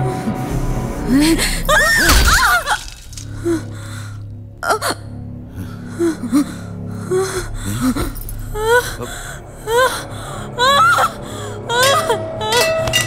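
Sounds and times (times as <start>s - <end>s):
dramatic film score drone: 0.0s - 13.0s.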